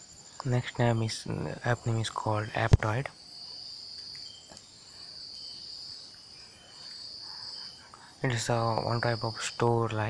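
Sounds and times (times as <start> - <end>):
faint high insect chirps: 0.0 - 10.0
insect trilling in pulses: 3.2 - 9.8.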